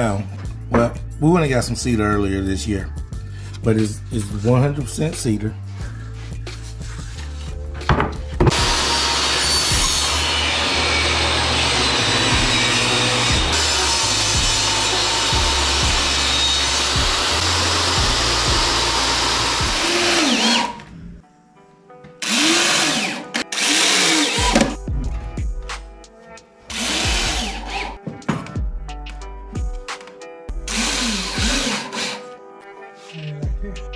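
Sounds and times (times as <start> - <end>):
electric drill running: 8.5 - 20.8, 22.2 - 24.8, 26.7 - 28.0, 30.7 - 32.3
power saw cutting wood boards: 8.5 - 20.9, 22.2 - 24.8, 26.7 - 28.0, 30.7 - 32.4.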